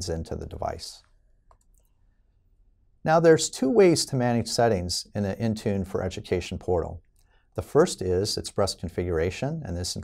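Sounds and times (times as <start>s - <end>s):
faint clicks: 1.0s - 2.0s.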